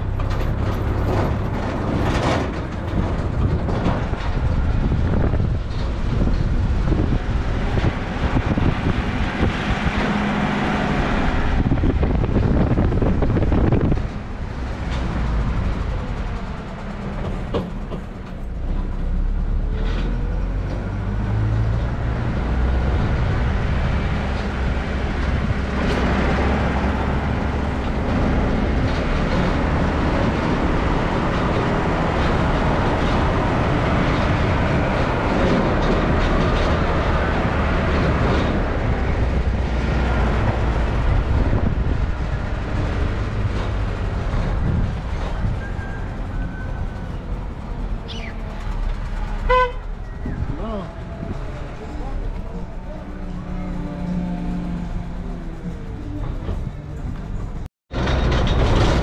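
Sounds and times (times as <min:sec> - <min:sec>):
wind on microphone: 0:00.0 - 0:17.5, 0:20.8 - 0:53.6
pickup truck engine: 0:00.0 - 0:59.0
tyres on paving: 0:00.0 - 0:59.0.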